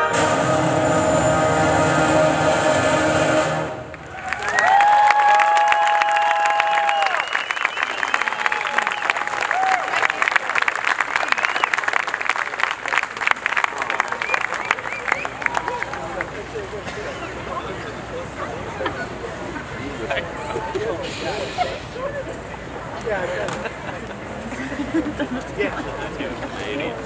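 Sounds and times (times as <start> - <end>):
concert band chord: 0.0 - 4.0
audience applause: 3.9 - 17.7
cheering and whoops: 4.0 - 10.4.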